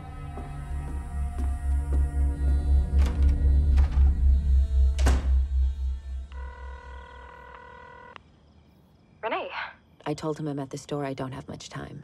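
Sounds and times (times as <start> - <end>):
deep pulsing music: 0.0 - 7.1
phone ringback tone: 6.3 - 8.2.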